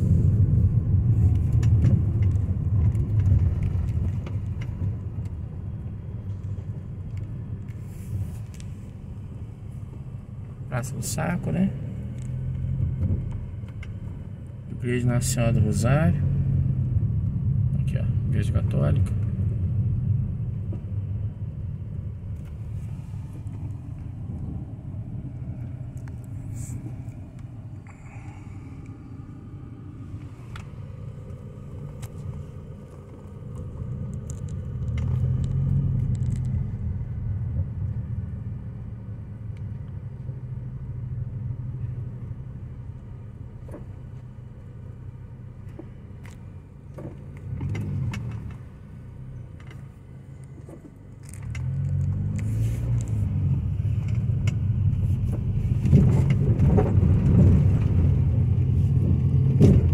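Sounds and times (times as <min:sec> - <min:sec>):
car engine and road noise: 0:00.0 - 0:59.9
rattles and clicks inside car: 0:00.0 - 0:59.9.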